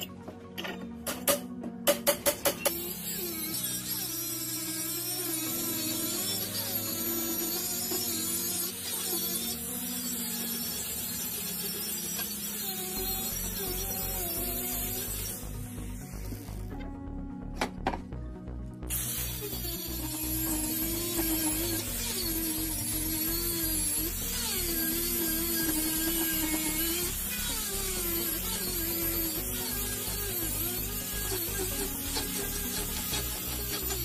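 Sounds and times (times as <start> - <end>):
angle grinder grinding steel: 0.0 - 16.9, 18.9 - 34.0
background music with beat: 13.1 - 21.8.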